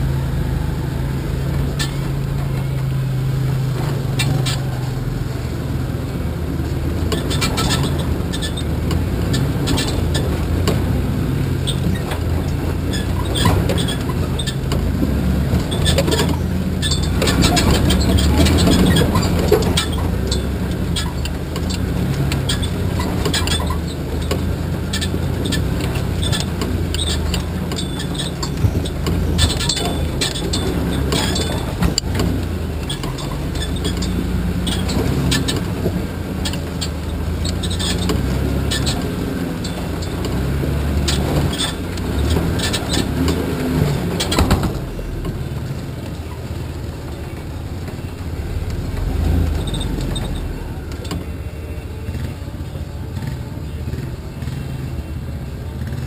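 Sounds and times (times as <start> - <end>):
body and suspension rattling: 0.0 - 56.0
truck engine running: 0.0 - 56.0.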